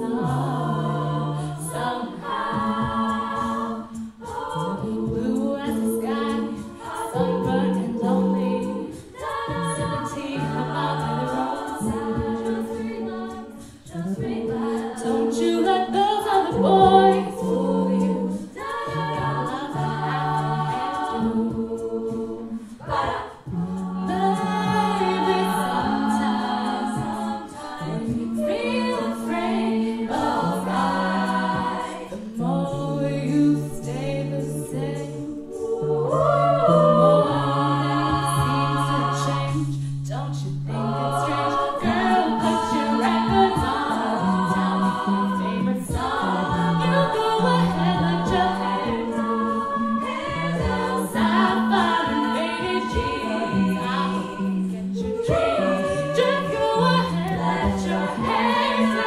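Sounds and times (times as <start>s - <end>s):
lead voice singing into microphone: 0.0s - 59.0s
vocal percussion: 0.0s - 59.0s.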